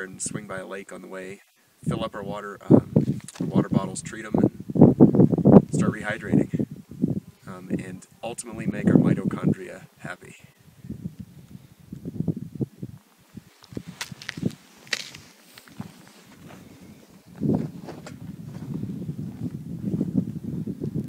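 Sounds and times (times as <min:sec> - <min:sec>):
footsteps crunching on rocky ground: 0:03.0 - 0:03.6, 0:13.0 - 0:20.2.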